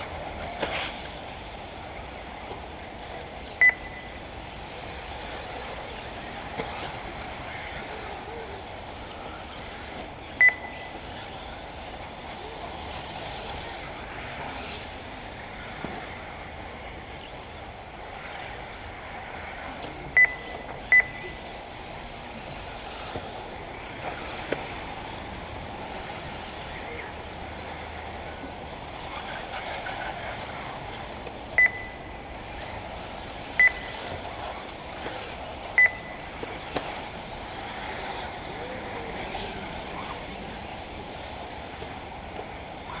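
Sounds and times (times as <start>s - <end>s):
steady background hiss: 0.0s - 43.0s
short electronic beeps: 3.6s - 4.2s, 10.4s - 11.0s, 20.2s - 21.5s, 31.6s - 32.8s, 33.6s - 34.0s, 35.7s - 36.3s.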